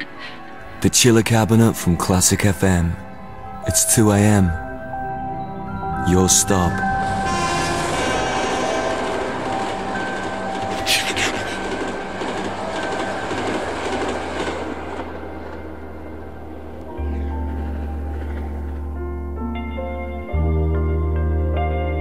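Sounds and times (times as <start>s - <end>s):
steady background tones: 0.0s - 21.8s
train running on rails: 6.0s - 19.4s.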